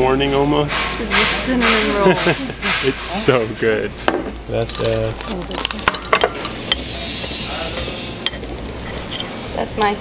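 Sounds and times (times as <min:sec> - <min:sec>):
steady hiss: 0:06.6 - 0:08.4.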